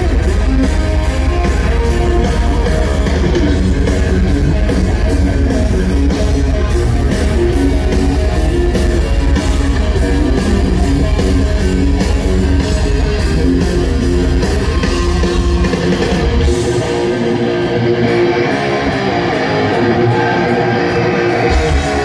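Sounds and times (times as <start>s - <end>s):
distorted electric guitars: 0.0s - 22.0s.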